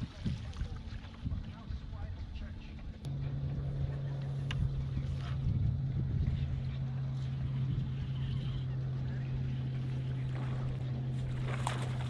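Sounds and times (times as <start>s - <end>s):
low wind rumble: 0.0s - 12.0s
low electric motor hum: 0.8s - 12.0s.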